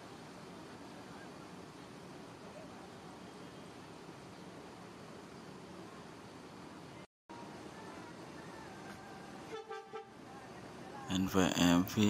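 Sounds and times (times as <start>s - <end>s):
bus horn toots: 9.5s - 10.2s.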